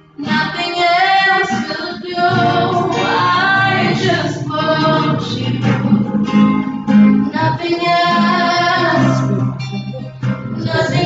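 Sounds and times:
acoustic guitar strummed: 0:00.0 - 0:11.0
women singing together: 0:00.2 - 0:05.9, 0:07.3 - 0:09.4, 0:10.6 - 0:11.0.

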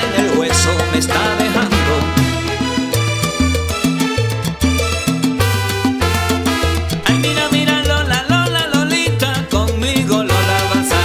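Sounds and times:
salsa band playing: 0:00.0 - 0:11.0.

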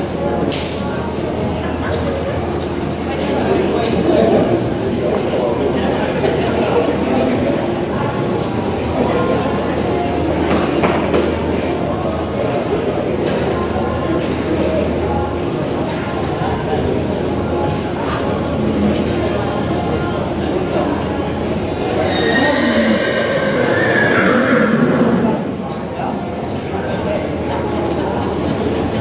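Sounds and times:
horse whinnying: 0:21.9 - 0:25.6.

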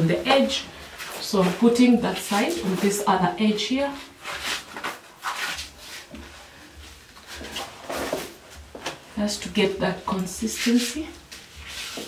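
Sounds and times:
wallpaper rustling: 0:00.0 - 0:09.2, 0:10.1 - 0:12.0.

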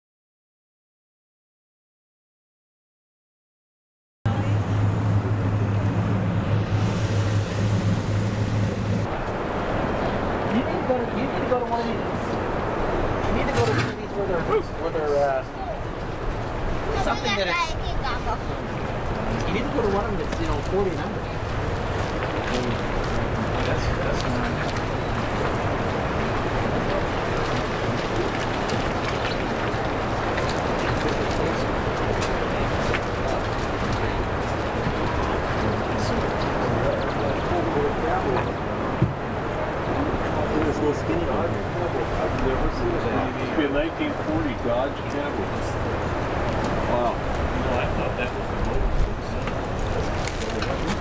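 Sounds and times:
vehicle engine running: 0:04.3 - 0:09.1
road and outdoor noise: 0:04.3 - 0:51.0
vehicle engine and tyres hum: 0:04.3 - 0:51.0.

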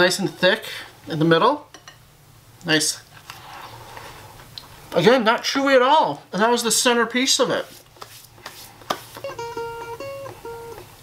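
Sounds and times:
held guitar notes: 0:09.2 - 0:11.0.

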